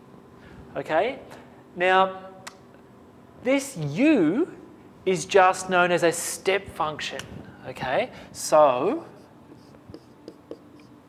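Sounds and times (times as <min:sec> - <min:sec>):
marker writing on a whiteboard: 0:09.0 - 0:11.0.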